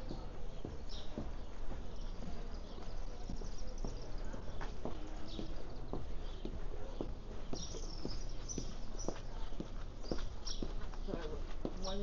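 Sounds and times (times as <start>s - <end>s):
footsteps on pavement: 0.0s - 12.0s
traffic rumble: 0.0s - 12.0s.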